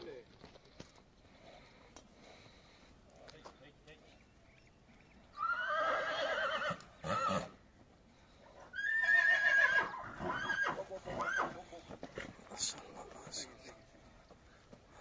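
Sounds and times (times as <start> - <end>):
horse whinnying: 5.3 - 7.6, 8.7 - 11.6.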